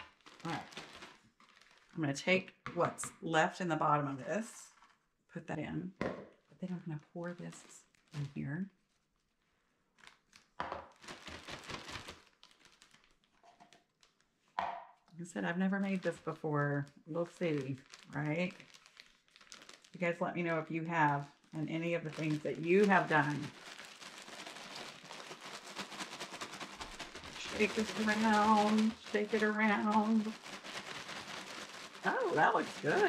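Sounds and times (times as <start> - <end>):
powdered sugar pouring: 0.0 - 2.0, 10.0 - 14.4, 15.2 - 33.0
plastic bag crinkling: 0.0 - 2.4, 4.4 - 5.1, 6.4 - 33.0.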